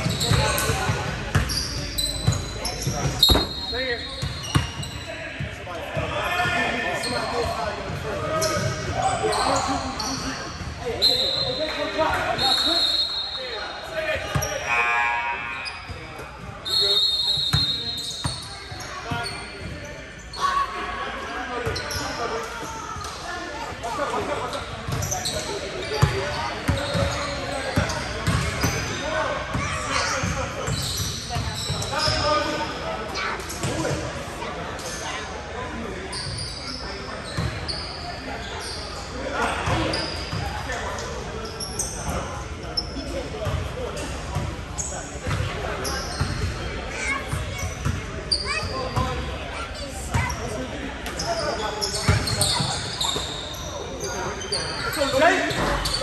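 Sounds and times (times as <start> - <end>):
sneaker squeaks: 0.0 - 5.6, 6.4 - 20.8, 21.6 - 56.0
players' voices: 0.0 - 56.0.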